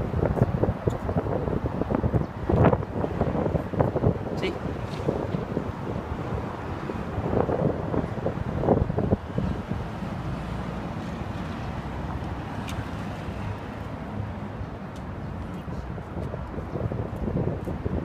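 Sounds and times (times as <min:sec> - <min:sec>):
road traffic: 0:00.0 - 0:18.0
wind buffeting microphone: 0:00.0 - 0:18.0.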